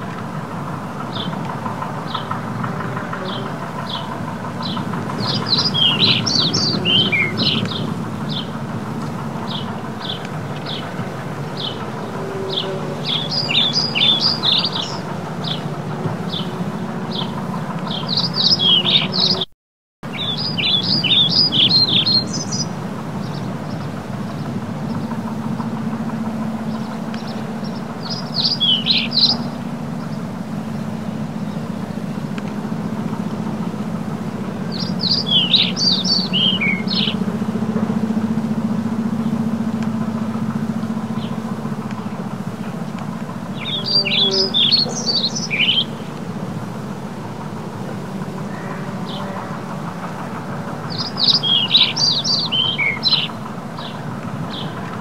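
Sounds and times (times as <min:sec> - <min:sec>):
low background rumble: 0:00.0 - 0:19.4, 0:20.1 - 0:55.0
small birds chirping: 0:00.0 - 0:19.5, 0:20.1 - 0:55.0.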